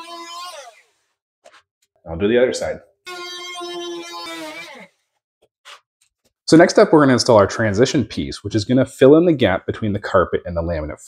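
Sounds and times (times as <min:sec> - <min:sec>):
oscillating multi-tool buzzing: 0:00.0 - 0:00.9, 0:03.1 - 0:04.9.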